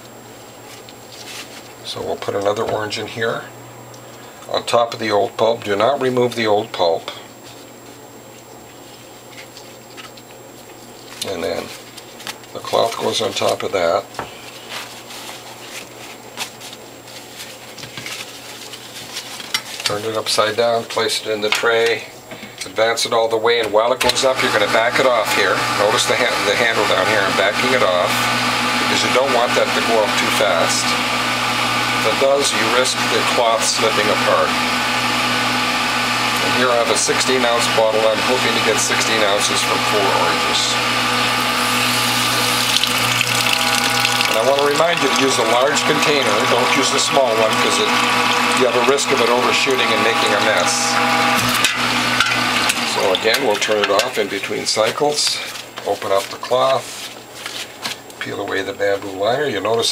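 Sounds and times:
juicer motor humming: 23.9 - 55.2
juice splashing into jug: 41.3 - 45.7.

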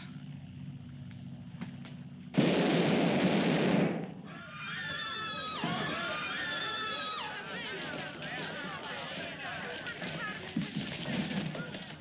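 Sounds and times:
gunfire blasts: 2.3 - 4.2.

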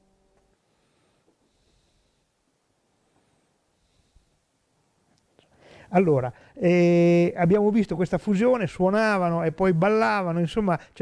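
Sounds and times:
soft breath: 0.5 - 4.7, 5.3 - 6.6
man speaking: 5.9 - 11.0.

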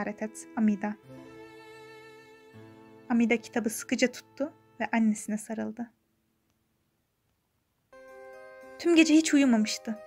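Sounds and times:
soft music of held notes: 0.0 - 5.8, 7.9 - 10.0.

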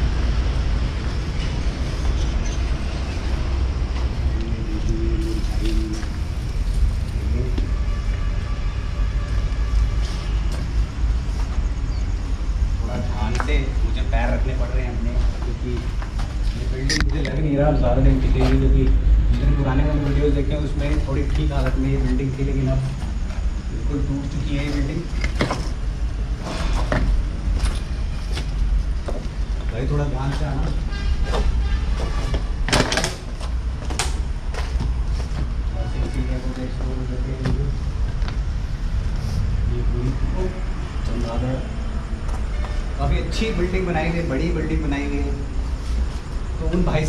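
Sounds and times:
steady low rumble: 0.0 - 32.7, 33.5 - 47.0.

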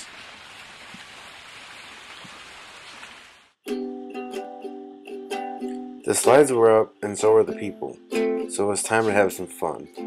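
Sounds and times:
running water hiss: 0.0 - 3.6.

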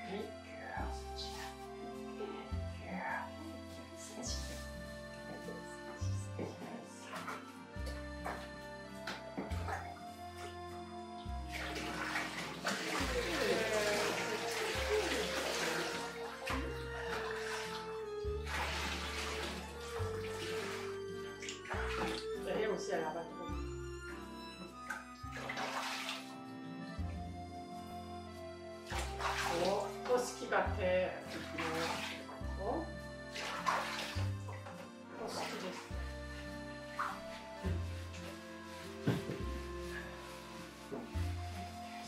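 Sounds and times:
background music with bass line: 0.0 - 42.0
water pouring and splashing: 9.5 - 22.4, 24.7 - 26.4, 28.9 - 30.4, 31.2 - 32.3, 33.3 - 36.2, 36.8 - 42.0.

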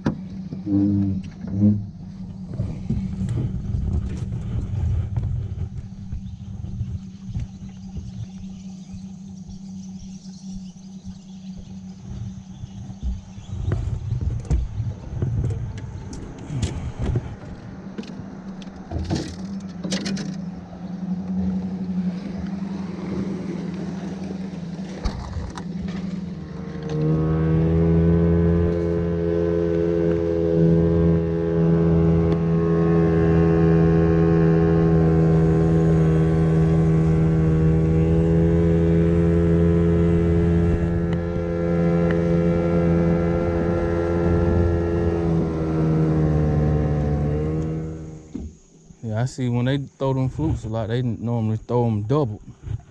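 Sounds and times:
outboard motor droning: 0.0 - 52.9.

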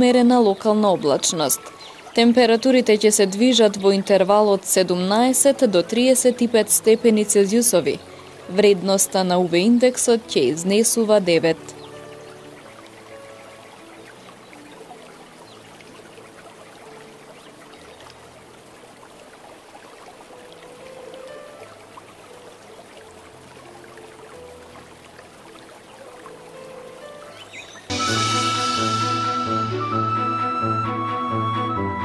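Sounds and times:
music of slow held chords: 5.0 - 19.1, 20.3 - 32.0.

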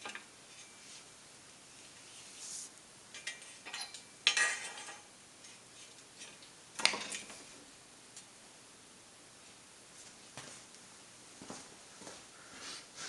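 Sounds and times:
steel pieces clinking and clattering: 3.1 - 5.1.

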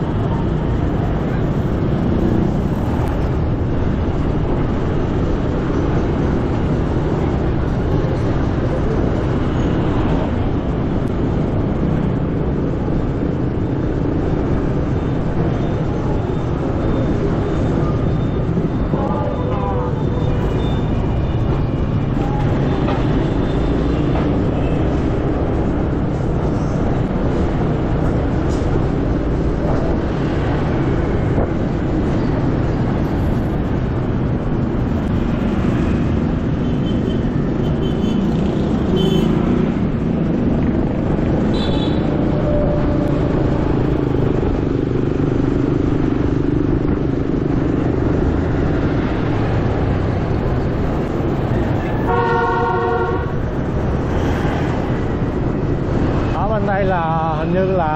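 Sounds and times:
street traffic: 0.0 - 57.9
vehicle horn toots: 52.1 - 53.4.

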